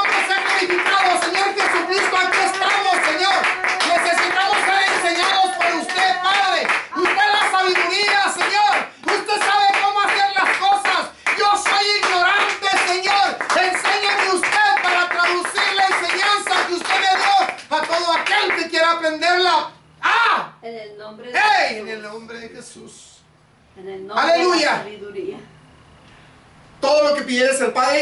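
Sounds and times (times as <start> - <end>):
hand clapping: 0.0 - 18.8.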